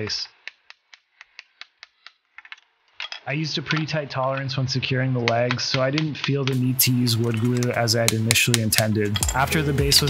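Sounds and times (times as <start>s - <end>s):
hatchet knocking on wood: 7.3s - 10.0s.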